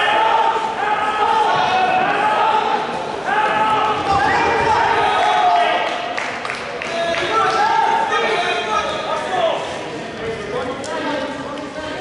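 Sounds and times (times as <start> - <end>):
voices shouting in echoing gym: 0.0 - 12.0.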